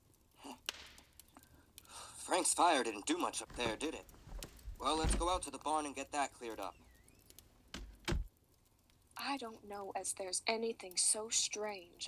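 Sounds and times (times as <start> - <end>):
door shutting thud: 4.9 - 5.5, 7.8 - 8.3.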